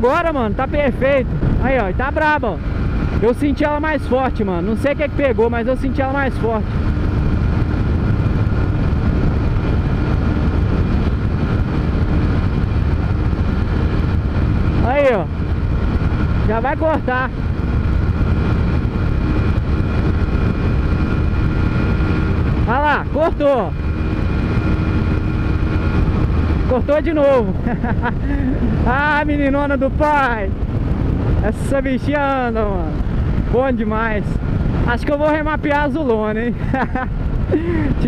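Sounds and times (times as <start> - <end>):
motorcycle engine at high revs: 0.0 - 31.4
wind noise: 0.0 - 38.0.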